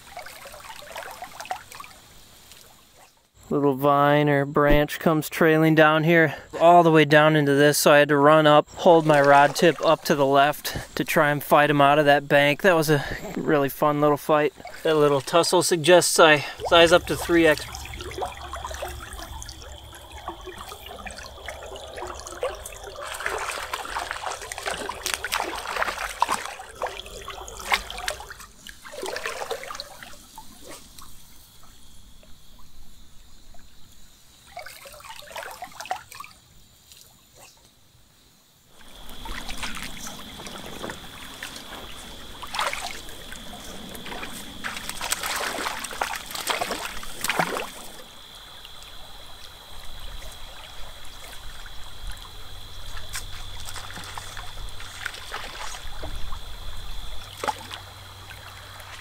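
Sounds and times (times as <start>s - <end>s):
water splashing around legs: 0.0s - 3.1s, 8.7s - 31.2s, 34.5s - 37.1s, 38.7s - 59.0s
stream water trickling: 0.0s - 4.2s, 4.8s - 59.0s.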